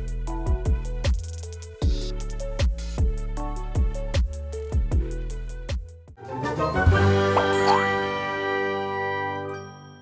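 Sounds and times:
jingle chord ringing: 0:06.7 - 0:08.5.

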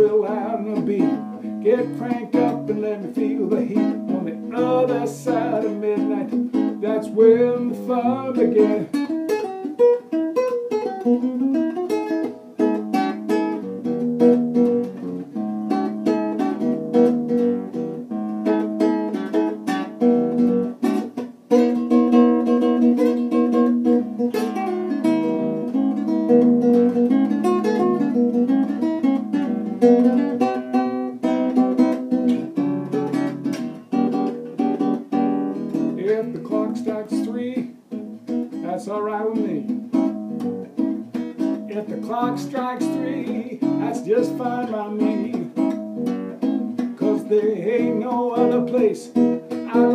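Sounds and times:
acoustic guitar blues: 0:00.0 - 0:49.9.

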